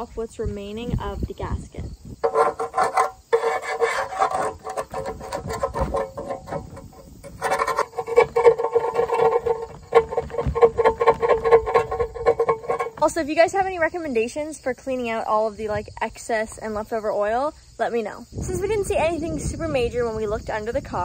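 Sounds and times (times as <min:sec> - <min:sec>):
metal scraper rasping on metal: 0:02.2 - 0:13.2.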